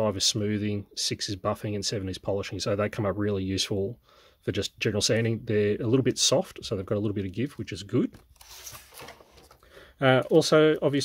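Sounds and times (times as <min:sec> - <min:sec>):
tools rustling on workbench: 0:08.2 - 0:09.6.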